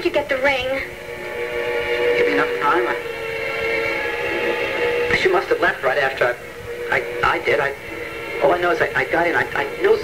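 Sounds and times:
held chord background music: 0.0s - 10.0s.

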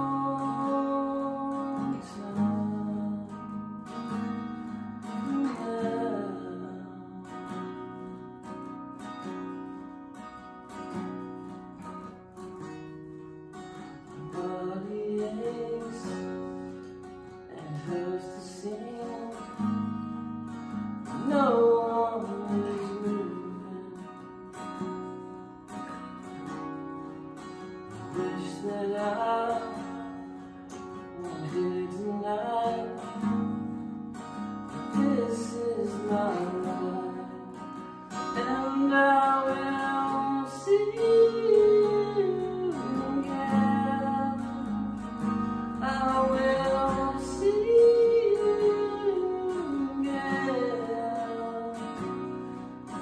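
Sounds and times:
acoustic guitar chords: 0.0s - 53.0s.

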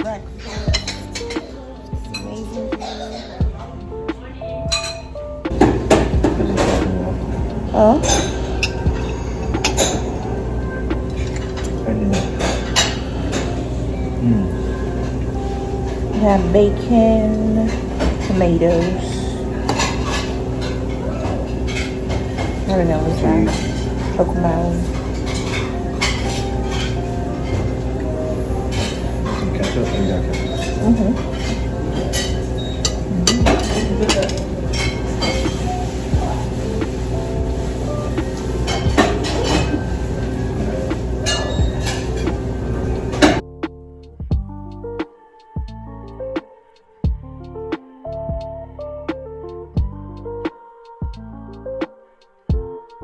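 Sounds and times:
steady background hum: 0.0s - 52.7s
plucked background music: 0.0s - 53.0s
cutlery clinking on plates: 4.7s - 6.9s, 28.7s - 42.5s.

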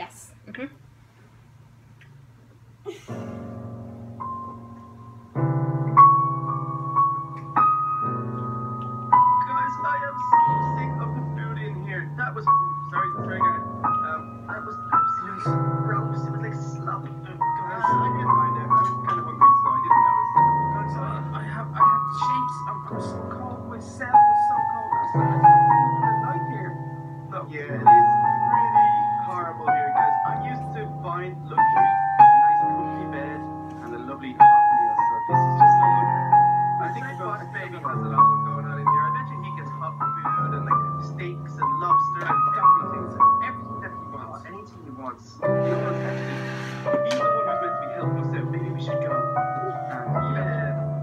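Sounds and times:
digital piano playing: 2.9s - 51.0s.

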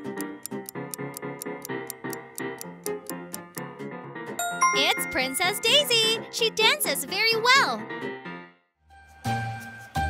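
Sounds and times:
rapid timer ticking: 0.0s - 3.7s
upbeat background music: 0.0s - 8.5s
bright chime: 4.4s - 6.2s.

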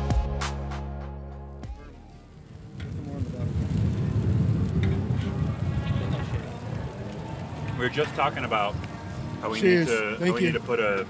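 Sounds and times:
intro music: 0.0s - 2.7s
wind buffeting microphone: 2.3s - 11.0s.

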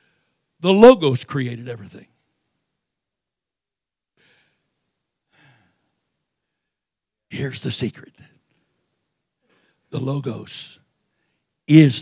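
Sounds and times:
man breathing: 4.2s - 4.7s, 5.3s - 6.8s, 9.4s - 9.9s.

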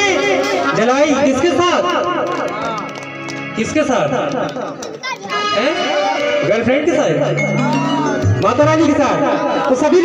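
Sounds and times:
keyboard music: 0.0s - 10.0s
man speaking through pa system: 5.4s - 10.0s.

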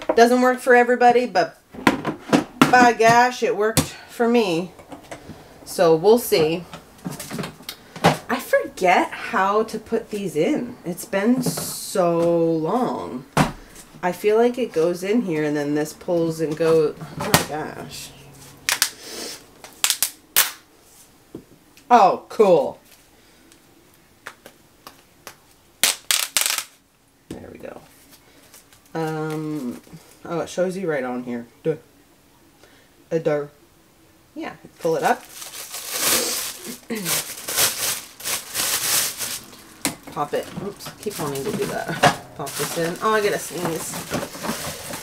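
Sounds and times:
plastic rustle: 34.8s - 45.0s.

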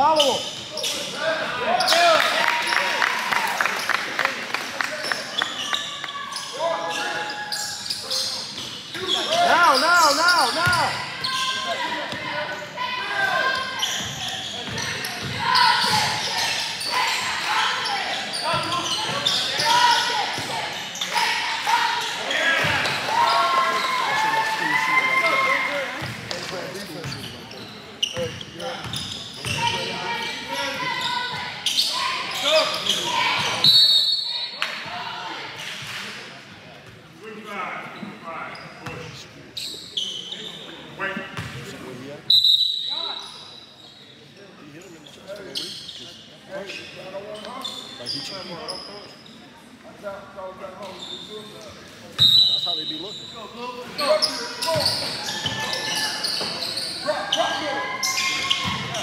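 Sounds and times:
crowd voices and shouts: 0.0s - 59.0s
basketball bouncing on court: 10.6s - 11.0s, 41.4s - 41.6s.

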